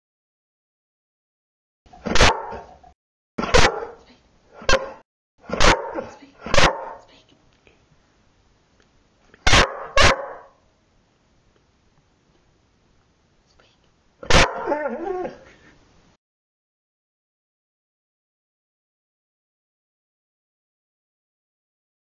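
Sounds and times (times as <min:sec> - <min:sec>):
dog barking: 0:02.0 - 0:07.1, 0:09.4 - 0:10.6, 0:14.2 - 0:14.8.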